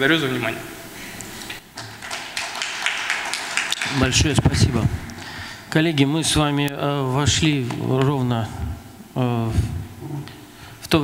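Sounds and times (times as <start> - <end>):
audience applauding: 1.8 - 5.5.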